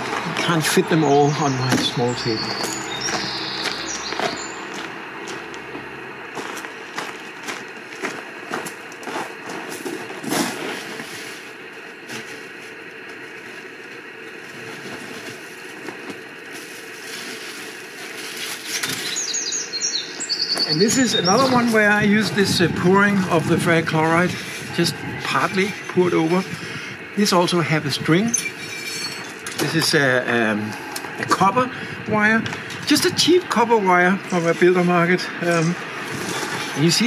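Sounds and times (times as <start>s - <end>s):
footsteps on gravel: 0.0s - 13.6s.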